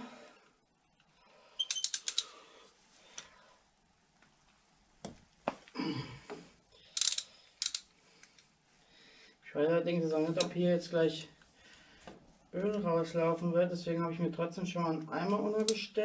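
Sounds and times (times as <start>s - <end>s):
ratchet wrench clicking: 1.6s - 2.3s, 6.9s - 7.9s.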